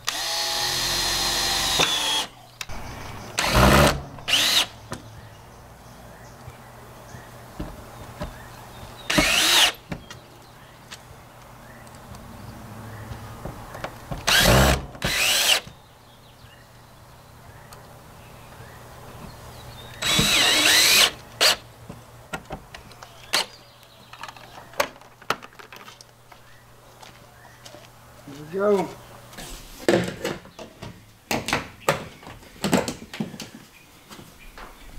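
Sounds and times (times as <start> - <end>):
cordless drill whining: 0.0 - 2.3, 3.4 - 4.7, 9.1 - 9.8, 14.3 - 15.7, 20.0 - 21.6.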